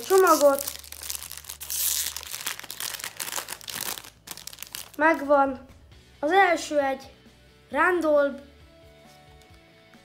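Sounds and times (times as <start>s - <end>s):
foil wrapper crinkling and tearing: 0.0s - 5.1s.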